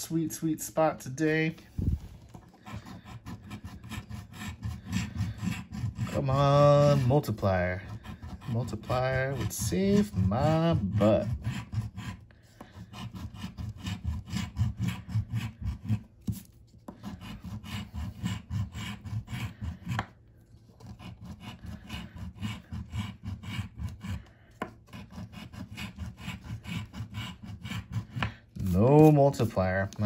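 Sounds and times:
coin scratching lottery ticket: 2.6s - 16.4s, 17.0s - 19.9s, 20.8s - 30.0s.

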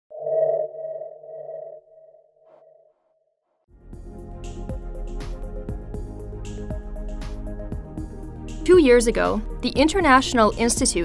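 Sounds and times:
music: 3.7s - 11.0s.

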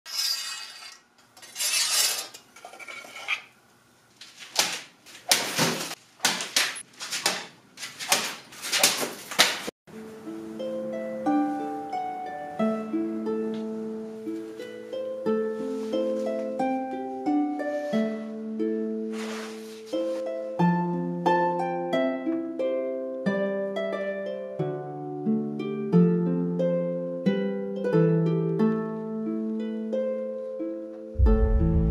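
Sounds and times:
metal clinking and scraping: 0.1s - 3.5s
plucked-string harp music: 9.9s - 31.9s.

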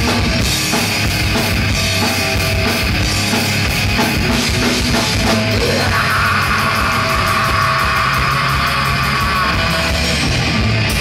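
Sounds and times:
distorted guitars: 0.0s - 11.0s
fast drumming: 0.0s - 11.0s.

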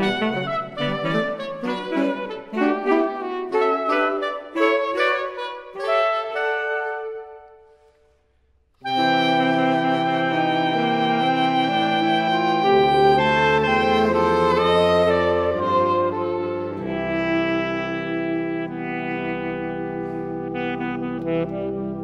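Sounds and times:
saxophone quartet playing chords: 0.0s - 7.9s, 8.8s - 22.0s.

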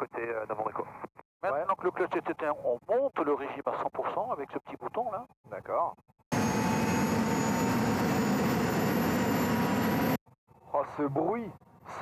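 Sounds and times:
high turbine whines: 6.3s - 10.2s.

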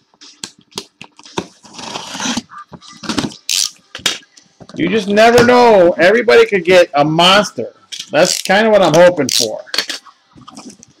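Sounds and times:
tape or cardboard tearing: 1.6s - 4.2s.

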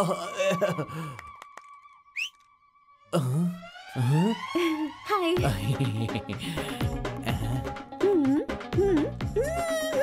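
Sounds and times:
rising finger whistle: 2.1s - 2.5s.

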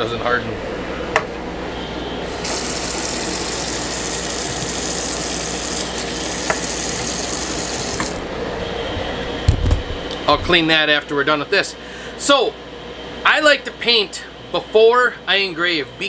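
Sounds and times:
faucet running into sink: 2.3s - 8.2s.

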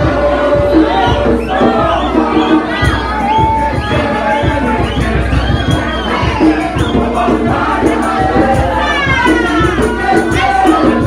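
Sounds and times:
choir singing: 0.0s - 11.0s
crowd cheering and shouting: 0.0s - 11.0s.

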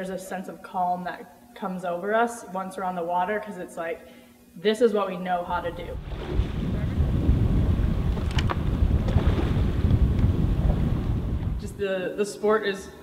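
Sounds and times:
wind buffeting microphone: 5.4s - 11.9s.

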